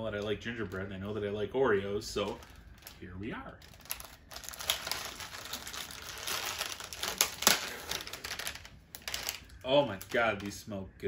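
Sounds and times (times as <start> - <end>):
plastic wrapper crinkling: 2.0 - 10.6.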